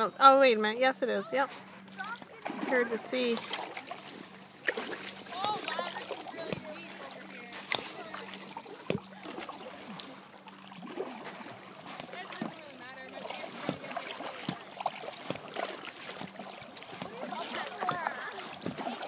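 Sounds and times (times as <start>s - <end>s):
paddle splashing in water: 1.4s - 19.0s.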